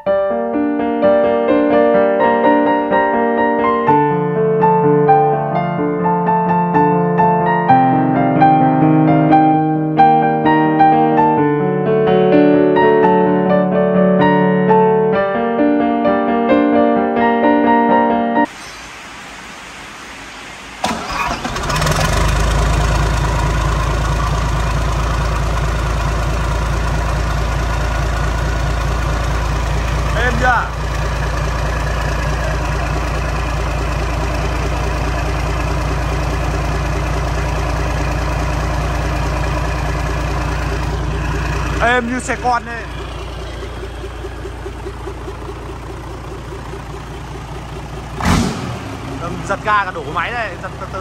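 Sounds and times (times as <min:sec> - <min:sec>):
diesel engine idling: 0:20.8 - 0:51.0
engine starter cranking: 0:20.8 - 0:51.0.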